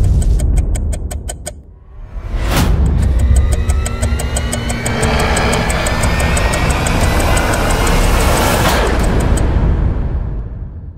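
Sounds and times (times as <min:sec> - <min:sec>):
fast ticking: 0:00.0 - 0:01.6, 0:02.7 - 0:09.5
heavy low rumble: 0:01.7 - 0:10.8
rising tones: 0:02.0 - 0:09.7.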